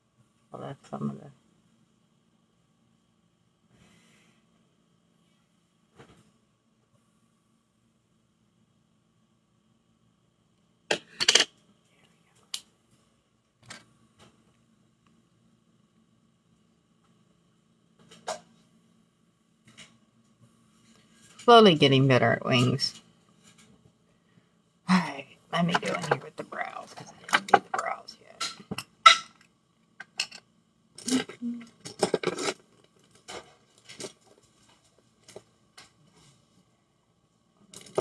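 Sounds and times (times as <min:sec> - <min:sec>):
faint electrical hum: 0:00.0 - 0:38.0.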